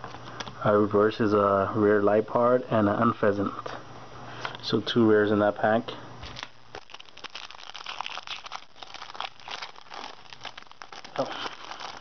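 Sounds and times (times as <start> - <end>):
foil wrapper crinkling: 6.3 - 12.0.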